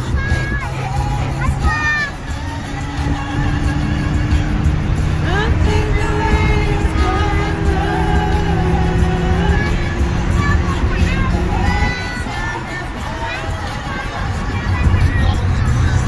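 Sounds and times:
car driving rumble: 0.0 - 16.0
music with sung melody: 0.0 - 16.0.

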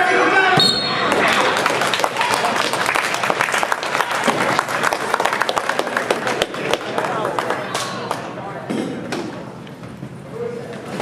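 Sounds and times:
scattered clapping: 1.1 - 8.3.

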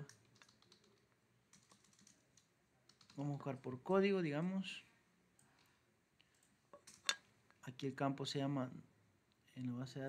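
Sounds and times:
keyboard keystrokes: 0.0 - 2.2.

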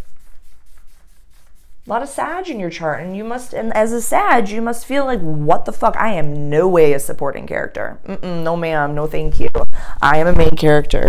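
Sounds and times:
pointer scratching on paper: 0.0 - 3.8.

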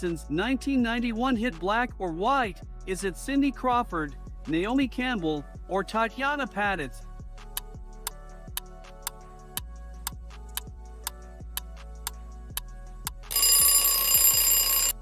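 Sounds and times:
low background music: 0.0 - 15.0
alarm clock bell ringing: 13.3 - 15.0.

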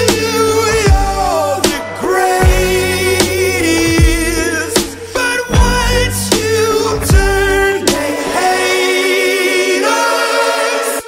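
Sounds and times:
choir-like pop-rock vocals: 0.0 - 11.0.

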